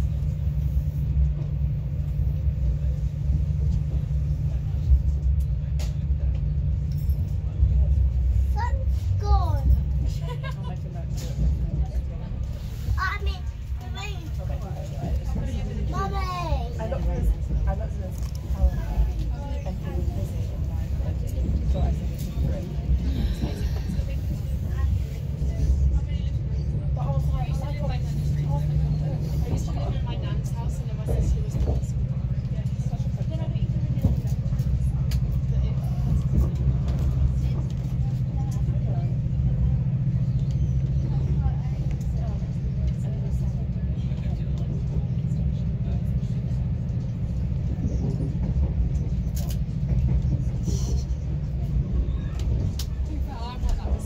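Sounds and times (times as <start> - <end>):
diesel engine drone: 0.0 - 54.0
faint passenger voices: 0.0 - 54.0
train running rumble: 0.0 - 54.0.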